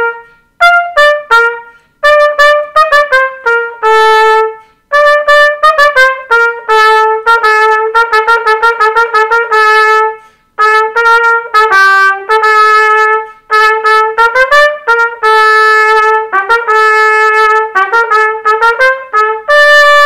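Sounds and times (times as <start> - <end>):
solo trumpet playing: 0.0 - 20.0.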